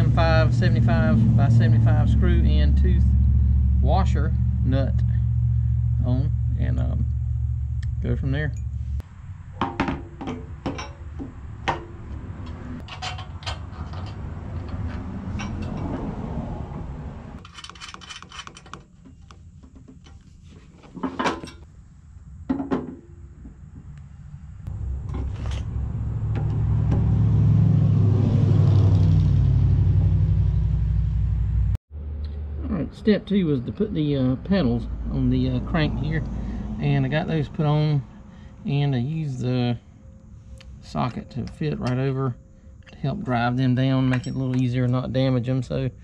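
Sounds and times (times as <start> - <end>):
low rumble: 0.0 - 17.4, 23.9 - 40.4
plastic panels and hardware clattering: 12.8 - 16.1, 17.4 - 21.7.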